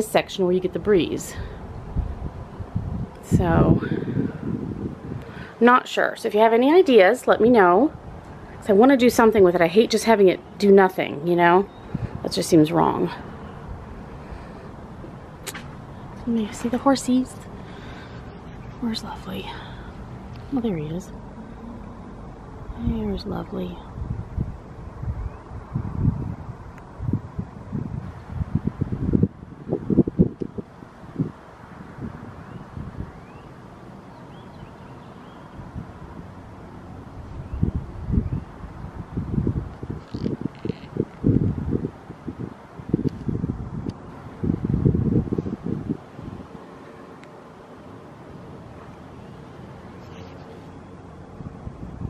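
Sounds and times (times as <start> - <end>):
wind buffeting microphone: 0.0 - 33.5, 34.3 - 47.0, 50.7 - 52.0.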